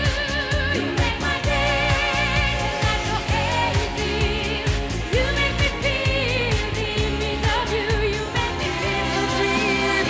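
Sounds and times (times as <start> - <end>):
band backing with drum beat: 0.0 - 10.0
woman singing pop song: 0.0 - 10.0.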